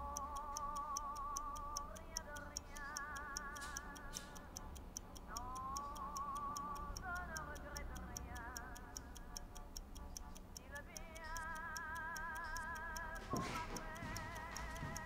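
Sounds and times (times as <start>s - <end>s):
steady ticking: 0.0s - 15.0s.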